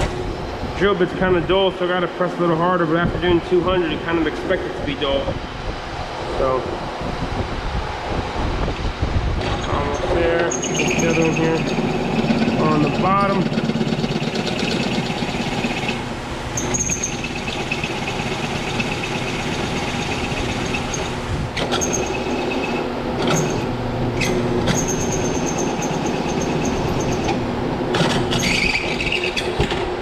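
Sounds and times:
high squeal of drilling metal: 0:09.6 - 0:27.4, 0:28.2 - 0:29.6
drill press motor hum: 0:10.5 - 0:29.9.

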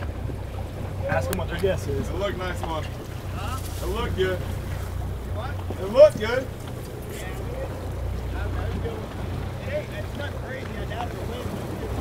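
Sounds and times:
boat engine idling: 0:00.0 - 0:12.0.

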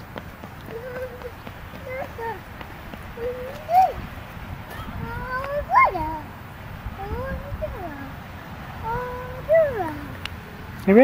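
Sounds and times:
toddler calling out: 0:00.7 - 0:02.4, 0:03.2 - 0:04.0, 0:04.7 - 0:06.3, 0:08.8 - 0:10.2.

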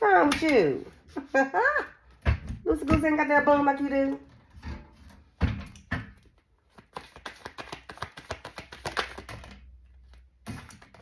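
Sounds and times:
cards rustling: 0:06.5 - 0:11.0.

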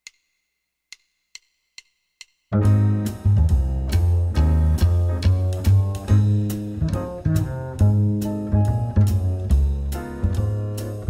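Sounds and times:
percussive count-in clicks: 0:00.0 - 0:02.6.

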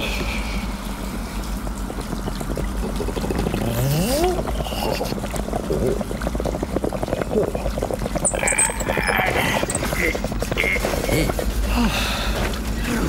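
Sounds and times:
bathwater running and foaming: 0:00.0 - 0:13.0.

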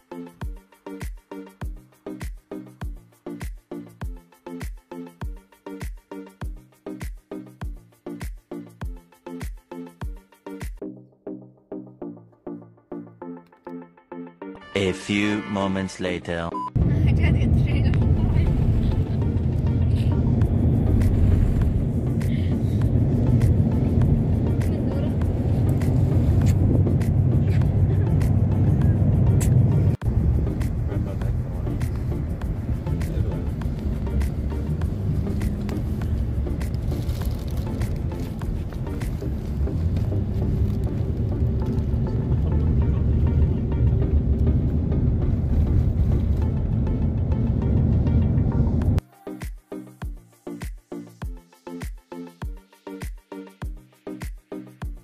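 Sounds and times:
background music: 0:00.0 - 0:55.0
car cabin road and engine rumble: 0:16.8 - 0:49.0.

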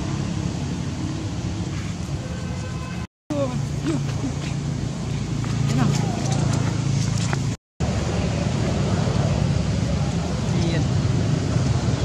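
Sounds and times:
low engine-like hum: 0:03.3 - 0:12.0.

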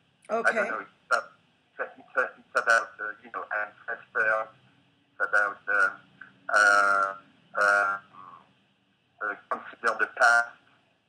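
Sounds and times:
man's hesitant drawn-out syllables: 0:05.2 - 0:08.4.

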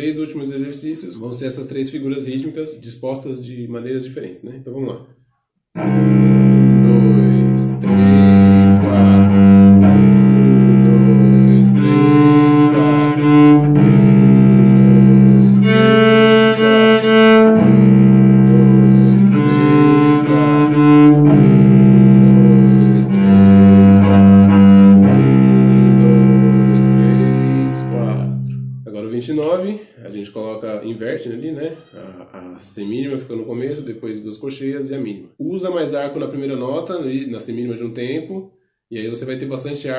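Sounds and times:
bowed cello notes: 0:05.8 - 0:29.1.

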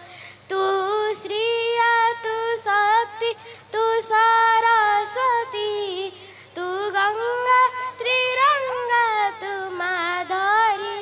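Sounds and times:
girl singing devotional song: 0:00.0 - 0:11.0.

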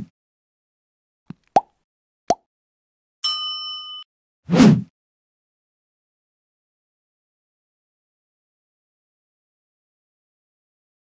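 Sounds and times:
bright bell-like ding: 0:03.2 - 0:04.1.

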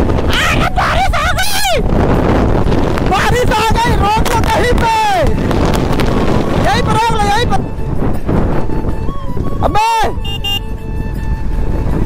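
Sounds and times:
motorcycle engine and road rumble: 0:00.0 - 0:12.0
wind buffeting microphone: 0:00.0 - 0:12.0
pitched voice: 0:00.3 - 0:01.8.

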